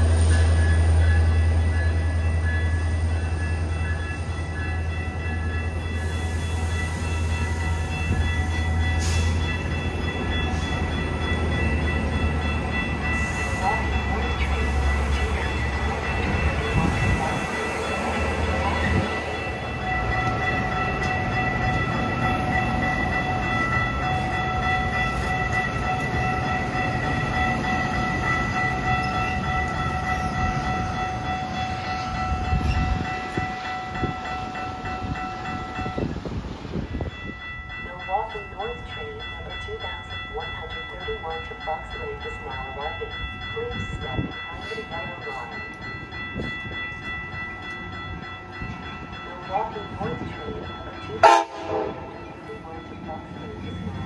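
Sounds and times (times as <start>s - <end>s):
high ringing tones: 0.0s - 54.0s
train cars rumbling on rails: 0.0s - 54.0s.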